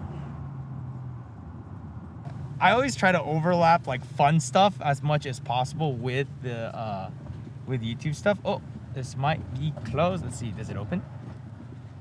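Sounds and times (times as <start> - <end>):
tyre noise on road: 0.0 - 12.0
vehicle engine hum: 0.0 - 12.0.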